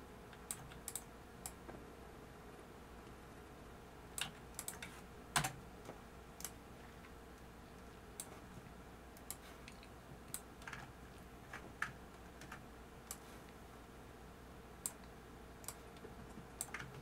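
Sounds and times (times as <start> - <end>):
faint steady hum: 0.0 - 17.0
computer keyboard keystrokes: 0.4 - 1.1, 4.2 - 5.6, 9.2 - 10.9, 16.6 - 17.0.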